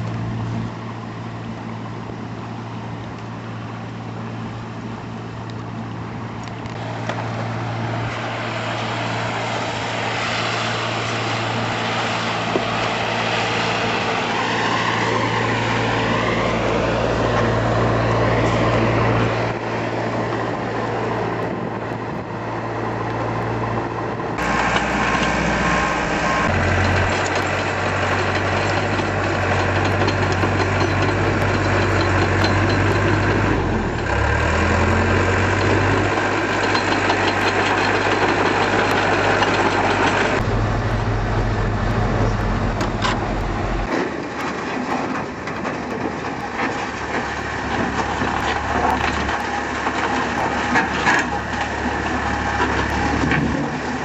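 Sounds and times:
heavy equipment engines running: 0.0s - 54.0s.

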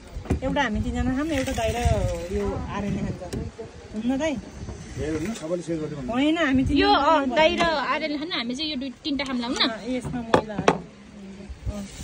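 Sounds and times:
knocks on wooden tabletop: 10.0s - 10.9s.

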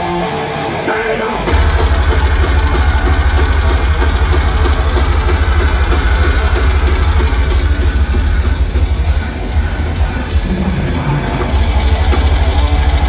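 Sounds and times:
distorted guitars: 0.0s - 13.0s
heavy metal band playing live: 0.0s - 13.0s
fast kick drum pulses: 1.5s - 13.0s.

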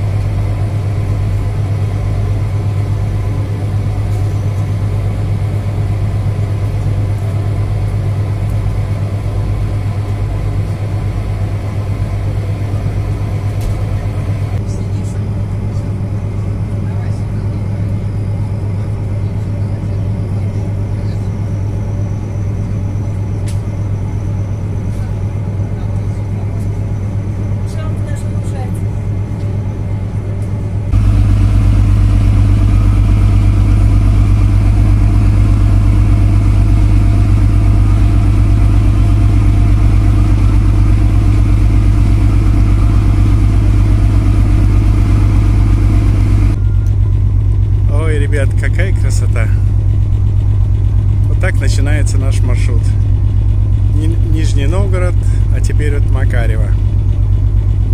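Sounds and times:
ship engines droning: 0.0s - 57.9s.

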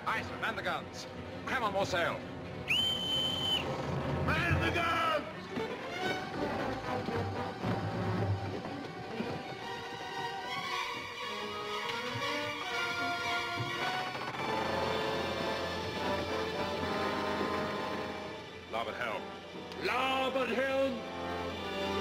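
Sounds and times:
film score music: 0.0s - 22.0s
bosun's pipe whistle: 2.6s - 3.8s.

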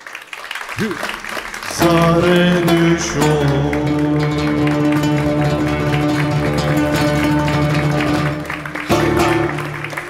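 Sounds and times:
solo acoustic guitar folk tune: 1.7s - 10.0s.

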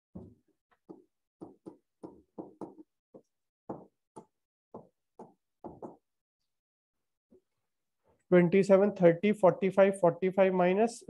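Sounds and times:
stylus knocking on tablet: 0.9s - 6.0s.

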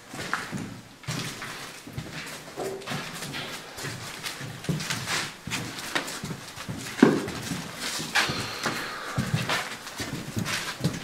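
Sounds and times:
footsteps of people walking: 0.0s - 11.0s.

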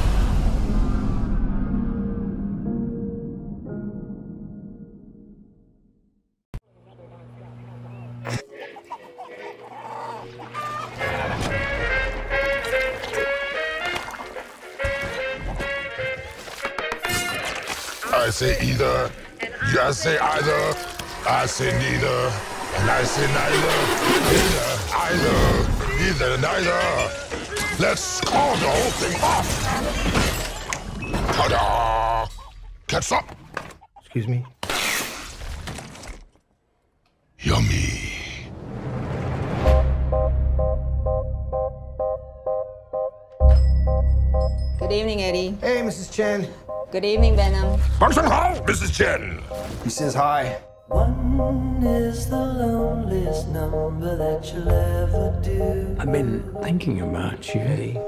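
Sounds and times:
chickens clucking: 7.0s - 11.8s, 33.6s - 34.6s.

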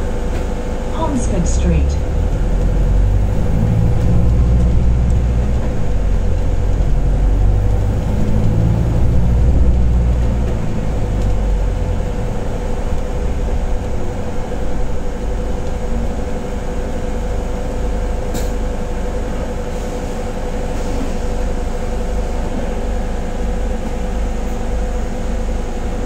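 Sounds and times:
steady whine: 0.0s - 18.8s
bus diesel engine rumble: 0.0s - 26.0s.

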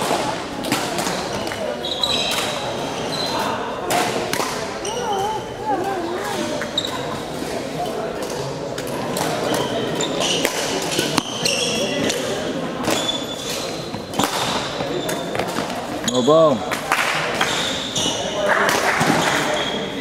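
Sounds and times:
shoes squeaking on floor: 1.2s - 3.6s, 4.7s - 7.3s, 9.3s - 12.1s, 12.8s - 16.6s, 17.4s - 18.4s.

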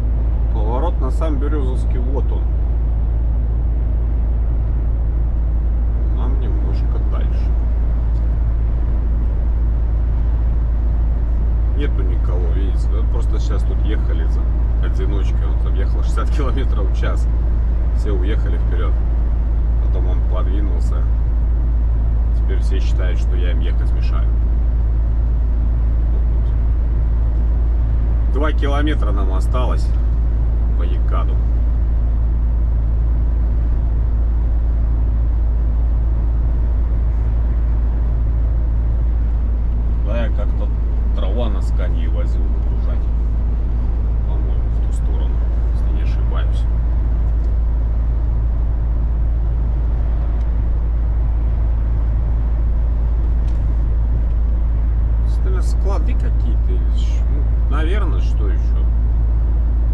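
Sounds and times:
truck cab engine and road drone: 0.0s - 59.9s.

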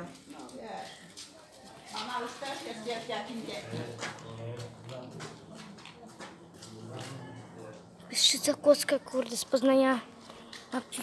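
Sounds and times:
people talking quietly: 0.0s - 11.0s.

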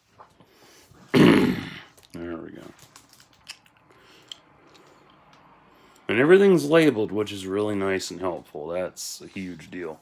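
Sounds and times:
man clearing his throat: 1.1s - 2.0s.

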